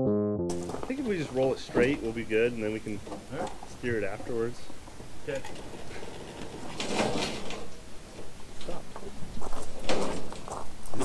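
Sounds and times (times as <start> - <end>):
car scraping and rattling on trailer: 0.7 - 11.0.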